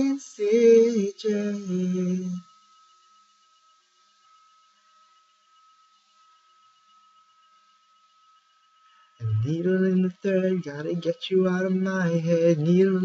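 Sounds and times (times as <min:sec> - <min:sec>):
faint high-pitched tone: 0:00.0 - 0:13.0.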